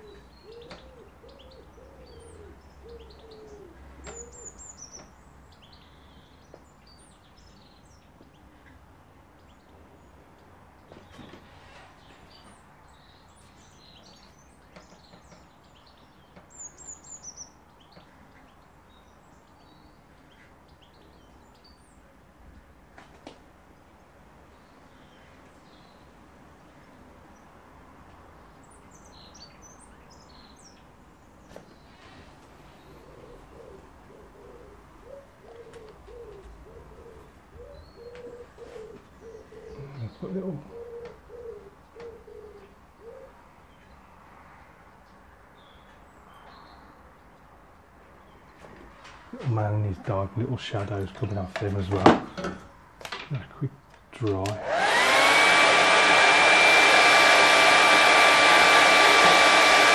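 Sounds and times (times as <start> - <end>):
low cooing bird: 0.0 - 5.1, 32.0 - 43.9.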